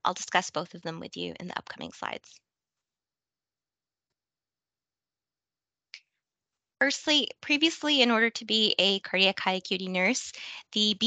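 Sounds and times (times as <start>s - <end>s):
woman speaking: 0.0s - 2.3s, 6.8s - 11.0s.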